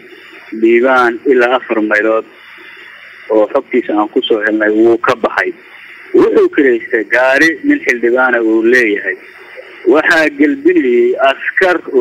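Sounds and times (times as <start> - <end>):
man talking over phone line: 0.5 - 2.4, 3.3 - 12.0.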